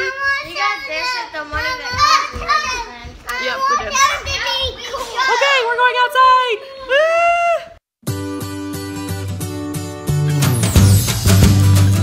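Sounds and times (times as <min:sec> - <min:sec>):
children talking and squealing: 0:00.0 - 0:07.3
music: 0:08.0 - 0:12.0.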